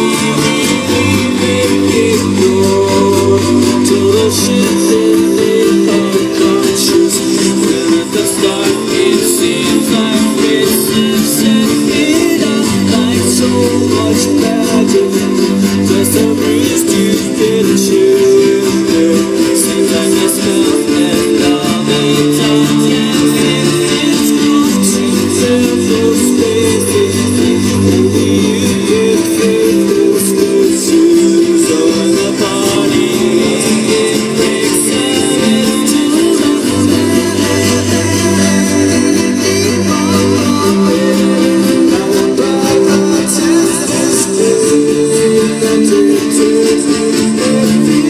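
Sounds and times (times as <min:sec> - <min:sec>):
live music from festival stage: 0:00.0 - 0:48.0.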